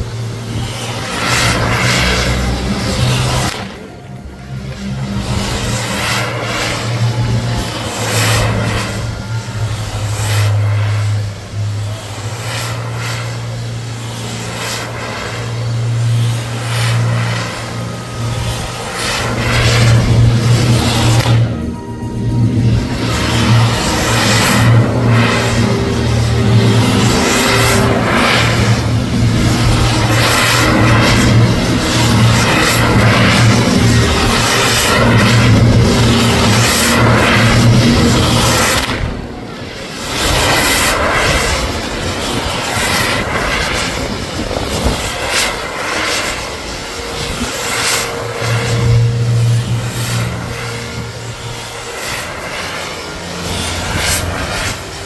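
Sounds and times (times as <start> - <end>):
firework fountains hissing and crackling: 0.0 - 55.0.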